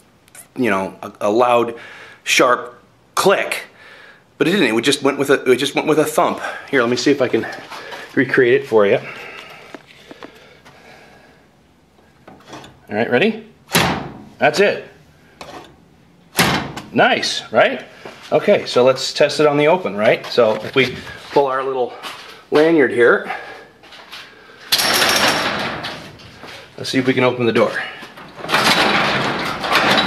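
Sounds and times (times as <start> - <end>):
metallic rattle and clatter: 24.7 - 26.4, 28.1 - 30.0.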